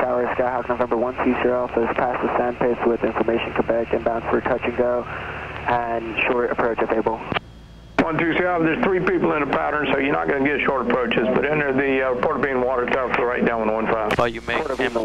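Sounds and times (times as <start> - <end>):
voices over radio: 0.0 - 7.4, 8.0 - 15.0
piston engine drone: 0.0 - 15.0.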